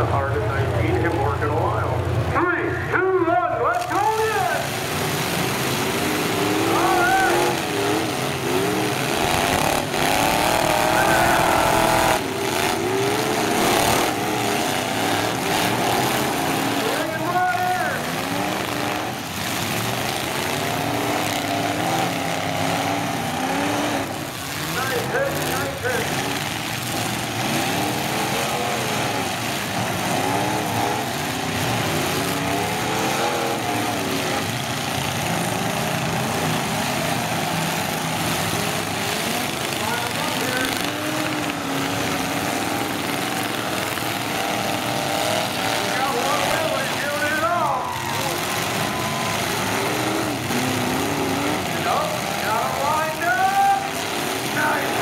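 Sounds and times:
car engines revving: 0:00.0 - 0:55.0
cars crashing: 0:00.0 - 0:55.0
large crowd noise: 0:00.0 - 0:55.0.

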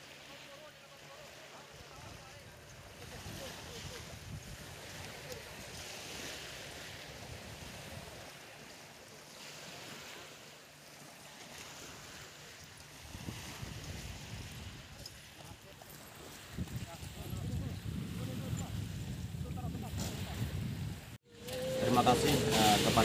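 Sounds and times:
waves washing onto pebbles: 0:00.0 - 0:17.2, 0:21.4 - 0:23.0
wind rumbling on microphone: 0:01.9 - 0:08.3, 0:12.8 - 0:23.0.

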